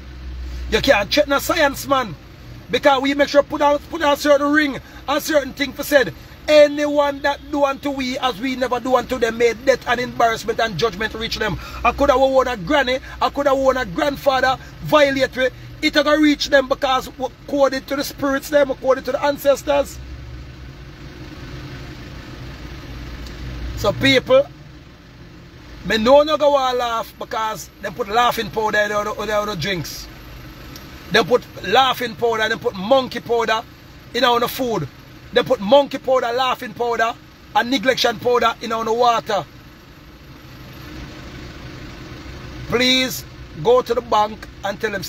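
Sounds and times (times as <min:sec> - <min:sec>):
car engine idling: 0:00.0 - 0:45.0.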